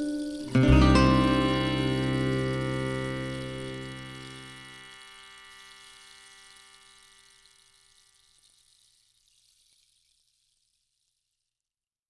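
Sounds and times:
acoustic guitar chord ringing: 0.0s - 6.2s.

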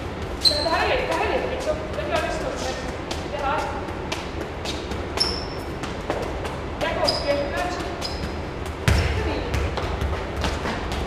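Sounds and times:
foot tapping football: 0.3s - 11.0s
ball bouncing on concrete: 0.5s - 11.0s.

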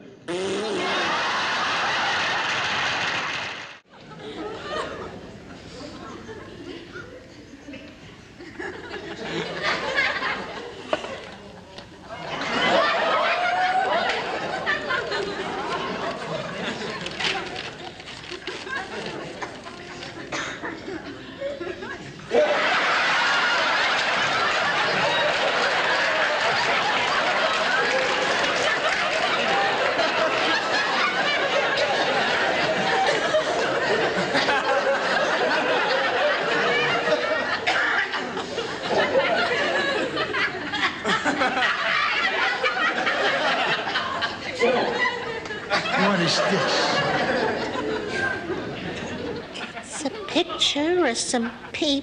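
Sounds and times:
studio audience laughing: 0.5s - 50.3s
person speaking dialogue: 49.9s - 52.0s.

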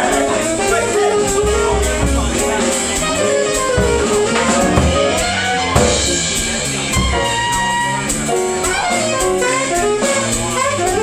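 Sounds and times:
drum kit cymbal strokes: 0.0s - 11.0s
piano: 0.0s - 11.0s.

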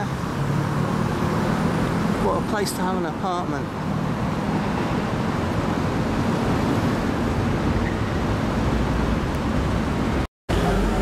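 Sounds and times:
road traffic roar: 0.0s - 11.0s.

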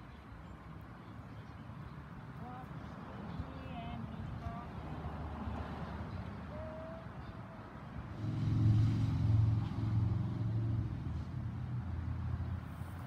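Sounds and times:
faint outdoor background: 0.0s - 13.0s
low engine hum: 2.3s - 13.0s.

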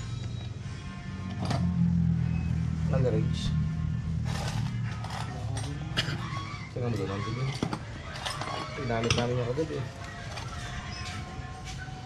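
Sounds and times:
vehicle engine humming: 0.0s - 7.1s.

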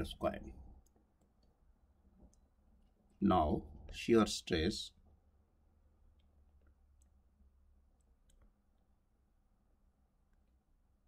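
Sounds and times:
stylus clicking on touchscreen: 8.0s - 8.6s.

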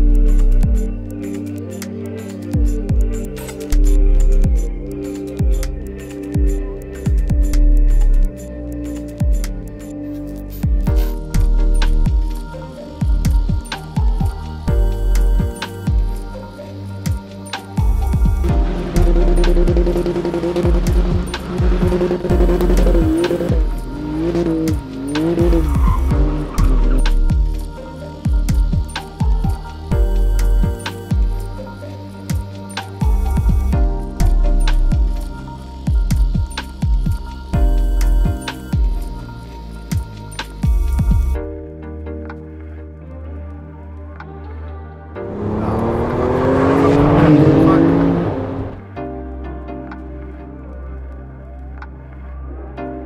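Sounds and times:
music with kick-drum beat: 0.0s - 1.6s, 2.4s - 9.8s, 10.5s - 41.6s
car engine revving: 18.0s - 27.6s, 45.2s - 48.9s
sports car accelerating past: 45.2s - 48.8s.

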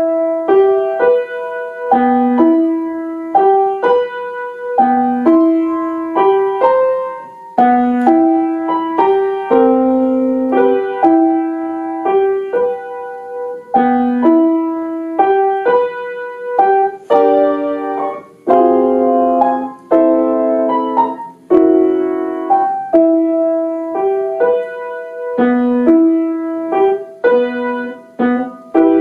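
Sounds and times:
slow piano piece: 0.0s - 29.0s.

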